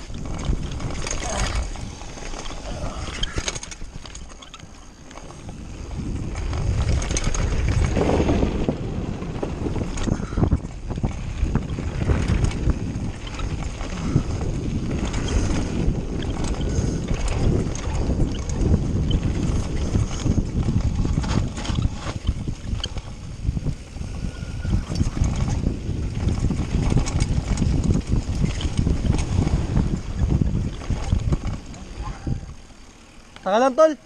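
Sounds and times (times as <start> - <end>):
bike rattling and clattering: 0.0 - 34.0
bike tyres rumbling over dirt: 0.0 - 34.0
wind buffeting microphone: 0.0 - 34.0.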